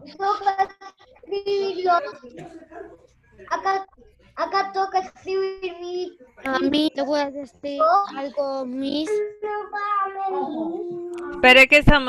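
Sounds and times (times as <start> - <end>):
child singing held notes: 8.1 - 11.4.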